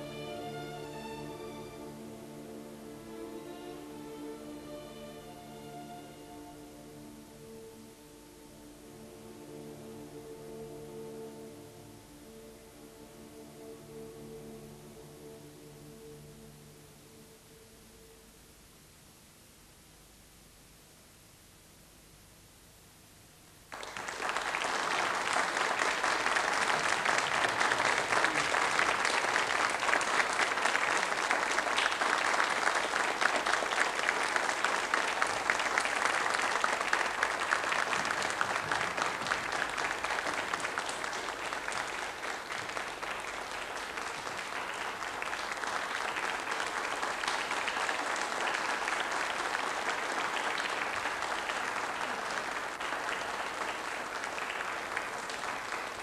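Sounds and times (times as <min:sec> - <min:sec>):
audience applauding: 0:23.7 - 0:56.0.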